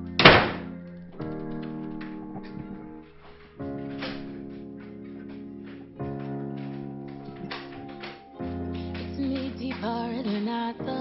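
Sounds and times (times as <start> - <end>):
sustained keyboard chords: 0.0 - 11.0
loud thump: 0.2 - 0.7.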